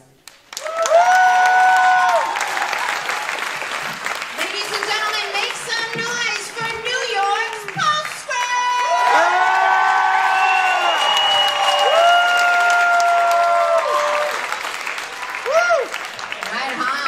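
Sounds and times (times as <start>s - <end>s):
audience applauding: 0.1s - 17.0s
long held whoops: 0.6s - 2.8s, 8.8s - 14.5s, 15.2s - 16.0s.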